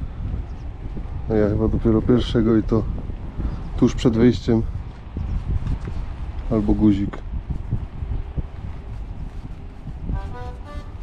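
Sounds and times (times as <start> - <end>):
low outdoor rumble: 0.0 - 11.0
background music with held notes: 10.2 - 11.0.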